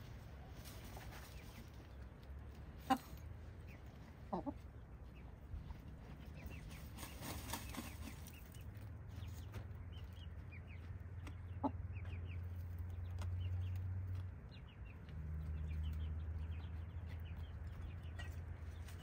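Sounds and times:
hens dust bathing: 0.0s - 11.2s
hens clucking softly: 0.2s - 14.2s.

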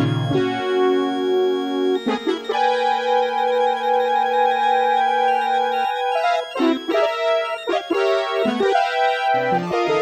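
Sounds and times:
layered synthesizer notes: 0.0s - 10.0s.

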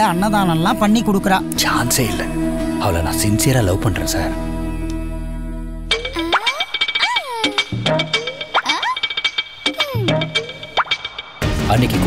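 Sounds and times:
springy boing glides: 5.9s - 11.2s.

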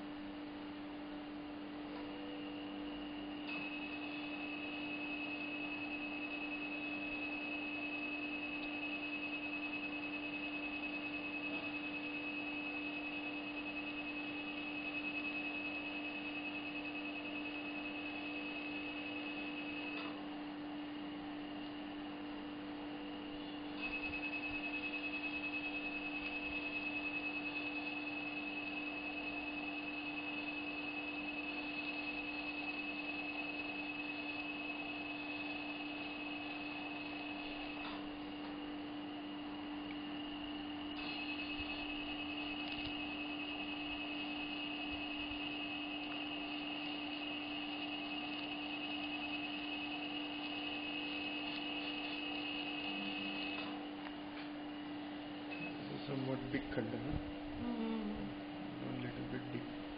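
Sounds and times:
high-pitched laser tone: 40.0s - 53.8s.

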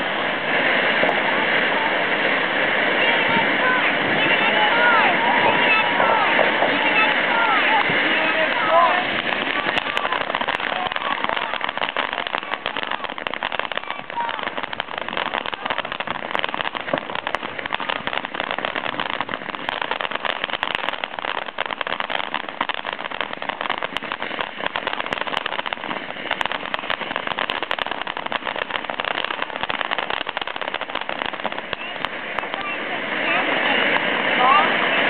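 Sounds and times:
firework fountain hissing and crackling: 0.0s - 35.0s.

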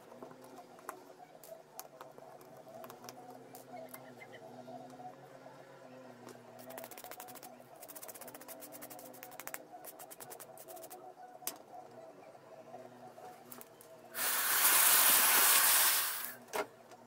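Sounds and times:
loud steady hissing: 14.1s - 16.4s.

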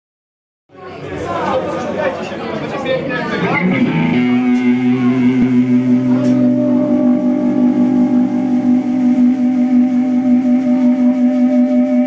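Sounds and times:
electric guitars and bass drone: 3.0s - 12.0s.

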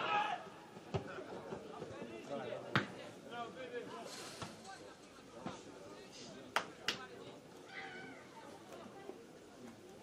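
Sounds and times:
distant shouts of players: 0.0s - 0.8s, 7.6s - 8.4s.

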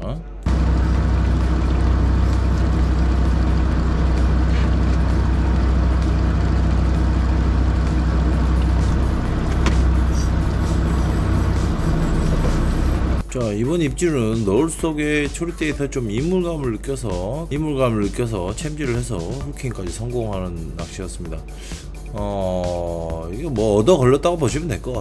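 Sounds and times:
boat engine droning: 0.0s - 13.4s.

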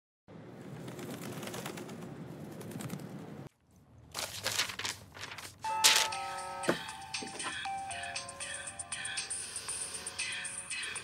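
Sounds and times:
page flapping as turned: 0.8s - 3.1s, 4.1s - 6.2s
newspaper pages rustling: 4.1s - 6.2s
melodic phone ringtone: 5.7s - 10.1s.

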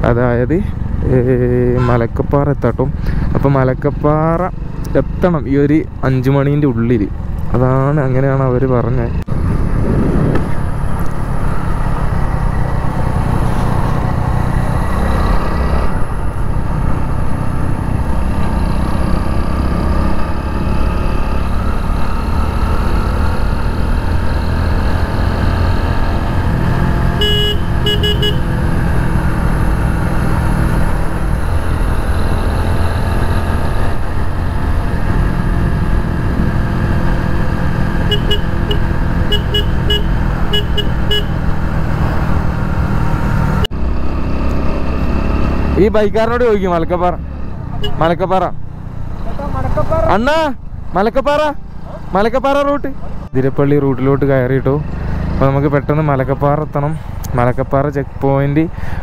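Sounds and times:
motorcycle running: 0.0s - 59.0s
wind noise on microphone: 9.2s - 11.1s
horn beeps: 27.2s - 28.5s, 38.1s - 41.4s.

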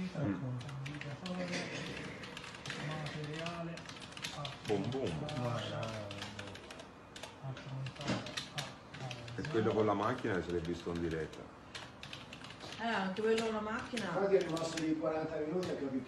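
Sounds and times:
sharp irregular clicks: 0.6s - 15.0s
men talking: 4.6s - 6.8s, 9.4s - 11.5s, 14.2s - 16.0s.

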